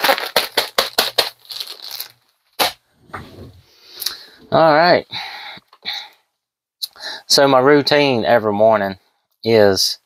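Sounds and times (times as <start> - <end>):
packaging crinkling and tearing: 0.0 - 2.8
packaging rustling: 0.0 - 4.5.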